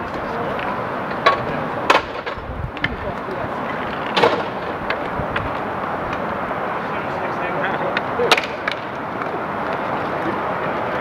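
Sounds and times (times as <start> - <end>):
stick and puck clacks: 0.0 - 6.3, 7.8 - 11.0
inline skate wheels rolling: 0.0 - 11.0.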